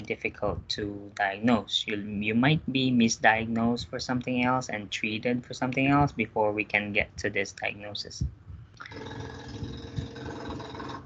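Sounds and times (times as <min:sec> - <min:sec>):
machine hum with held tones: 0:08.4 - 0:11.0.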